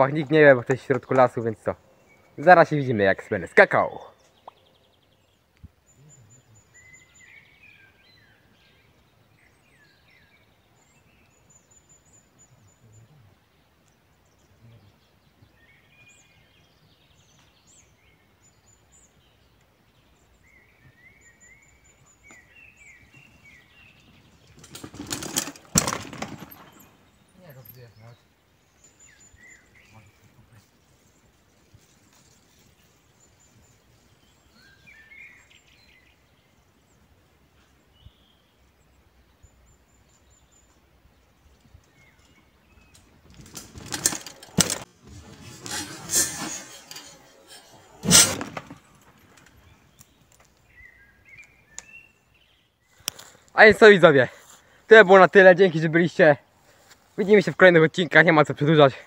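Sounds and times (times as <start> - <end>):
birds chirping faintly: 0.0 - 59.0
bicycle tyres on sand: 43.3 - 49.9.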